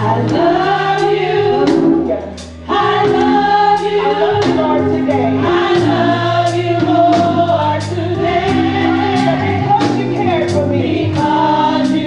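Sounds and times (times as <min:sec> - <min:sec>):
bass and drums: 0:00.0 - 0:12.0
choir singing gospel: 0:00.0 - 0:12.0.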